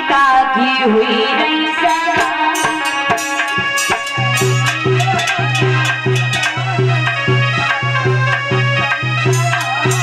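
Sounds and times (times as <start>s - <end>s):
woman singing: 0.0s - 3.5s
hand drum beating: 1.8s - 10.0s.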